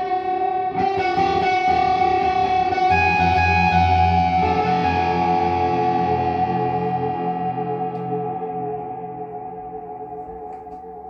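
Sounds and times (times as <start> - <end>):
electric guitar notes with echo: 0.0 - 11.0.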